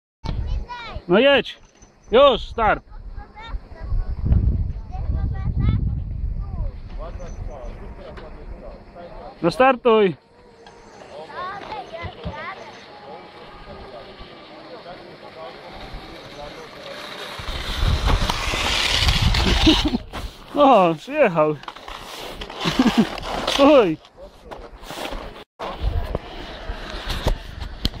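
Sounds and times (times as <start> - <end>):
people talking and calling out: 0.2 - 21.7.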